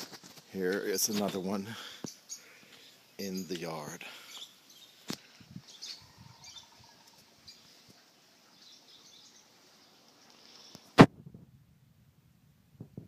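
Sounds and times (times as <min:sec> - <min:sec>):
faint bird chirps: 0:01.8 - 0:11.0.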